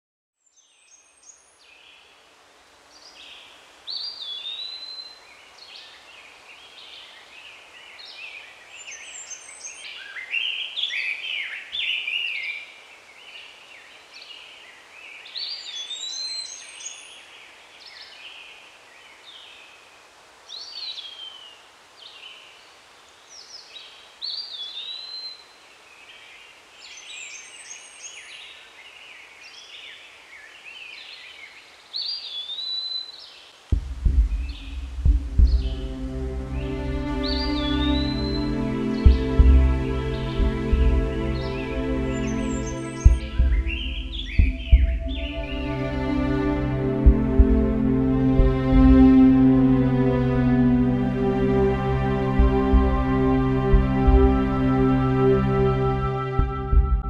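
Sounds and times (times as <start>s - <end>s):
rising and falling whistled birdsong: 0.4s - 2.2s, 2.9s - 49.5s, 53.0s - 57.0s
steady background hiss: 0.5s - 57.0s
birds singing and chirping: 3.0s - 19.6s, 26.8s - 49.2s.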